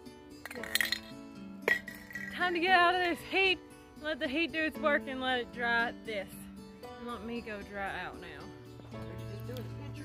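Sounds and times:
background music: 0.0s - 10.0s
spray paint can clinking: 0.4s - 2.6s.

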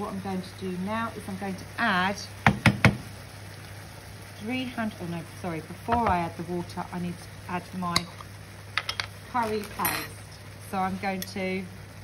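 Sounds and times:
wooden spoon knocking on pan: 2.4s - 3.1s, 5.8s - 6.3s.

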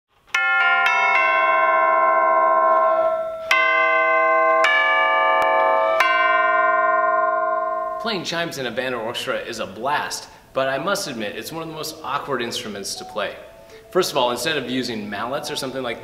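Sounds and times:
tubular chimes melody: 0.4s - 8.4s, 11.8s - 16.0s.

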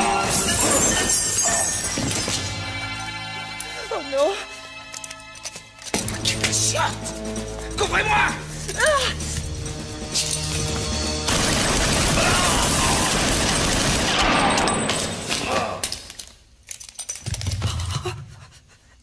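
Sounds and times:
background music: 0.0s - 17.2s
automatic gunfire: 11.3s - 14.6s.

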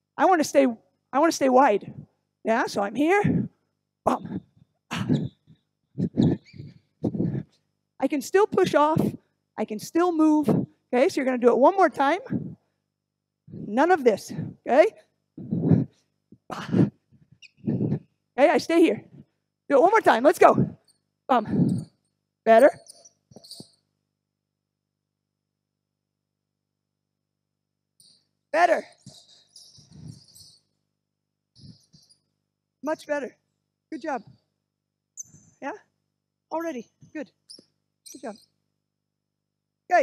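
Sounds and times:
woman making bom sounds: 6.0s - 7.4s.

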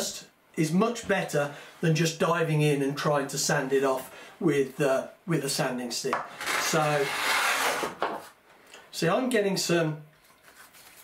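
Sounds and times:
hand plane shaving wood: 6.4s - 8.0s.

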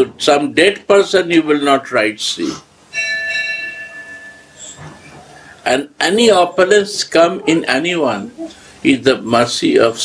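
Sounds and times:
bell ringing: 2.9s - 4.8s.

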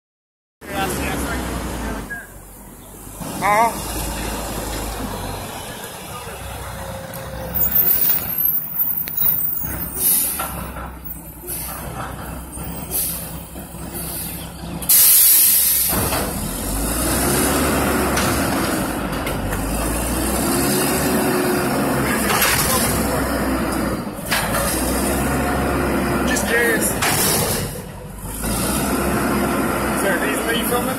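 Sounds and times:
diesel engine revving: 0.6s - 30.9s
air brake hiss: 9.8s - 10.6s, 11.4s - 11.9s, 12.9s - 16.0s.

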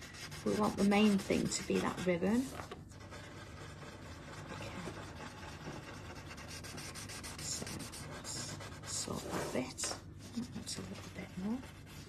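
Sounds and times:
blending stump rubbing paper: 0.0s - 12.0s.

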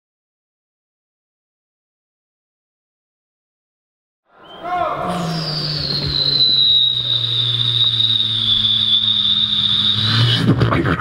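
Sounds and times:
low hum: 4.4s - 10.7s
beatboxer whistle-like tone: 4.4s - 11.0s.

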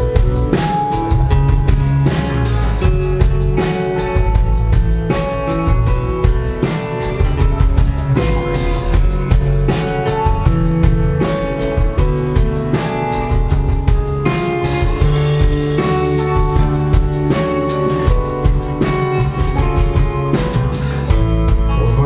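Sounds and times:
acoustic guitar strumming: 0.0s - 22.0s
drum kit: 0.0s - 22.0s.

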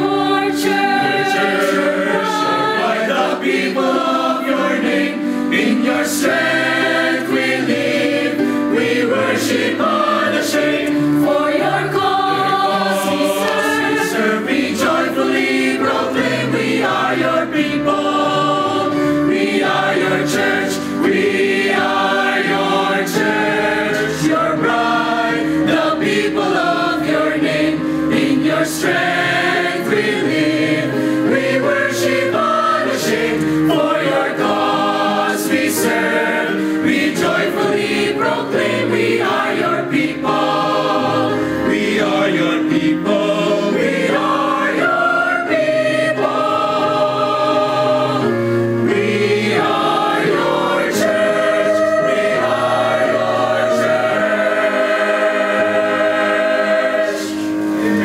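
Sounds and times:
mixed choir singing: 0.0s - 58.0s.

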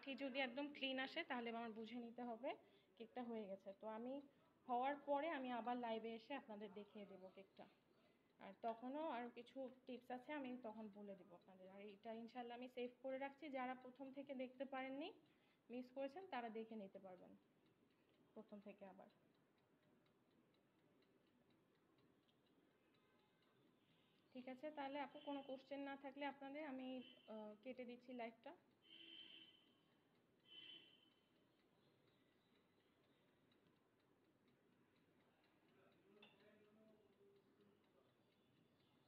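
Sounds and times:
faint steady ticking: 0.0s - 39.0s.

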